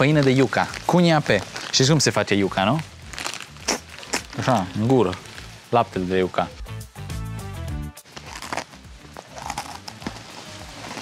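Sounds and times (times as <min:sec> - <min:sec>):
crunchy biscuits being bitten: 0:03.1 - 0:04.6, 0:08.1 - 0:11.0.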